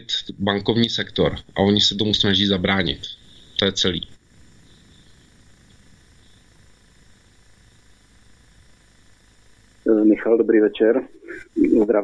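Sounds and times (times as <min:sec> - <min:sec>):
faint background hiss: 0:00.0 - 0:12.0
low line hum: 0:00.0 - 0:12.0.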